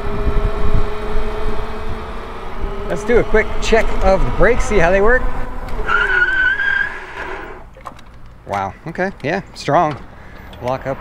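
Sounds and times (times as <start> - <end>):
bike disc brakes squealing: 5.8 - 7.7.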